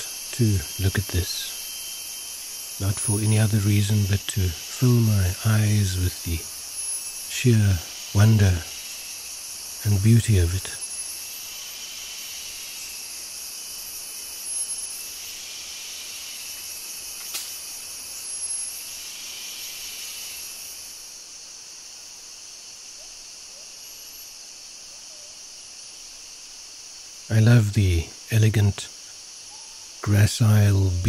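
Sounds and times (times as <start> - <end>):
insect chorus: 0.0 - 31.0.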